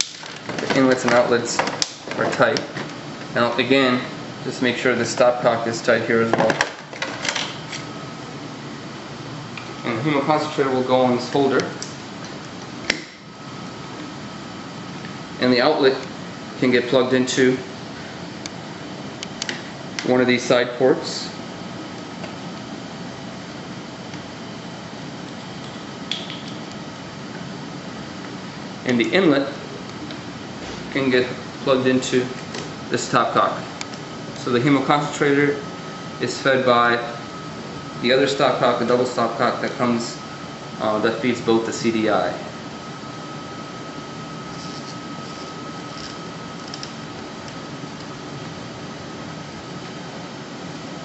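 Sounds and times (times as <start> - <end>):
fan-like air-handling noise: 0.0 - 51.0
steady room hum: 0.0 - 51.0.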